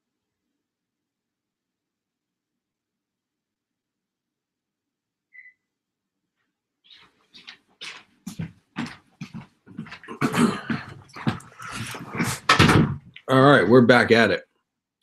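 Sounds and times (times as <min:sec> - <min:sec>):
footsteps: 0:06.9 - 0:13.2
heavy thump into chair: 0:12.2 - 0:13.1.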